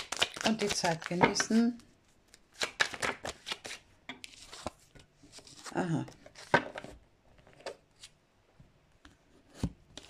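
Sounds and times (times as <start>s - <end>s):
cards being shuffled: 0.0s - 1.8s, 2.6s - 6.9s.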